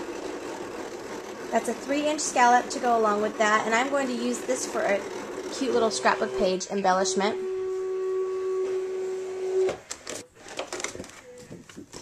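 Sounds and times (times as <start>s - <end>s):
cutting machine motor humming: 0.0s - 10.2s.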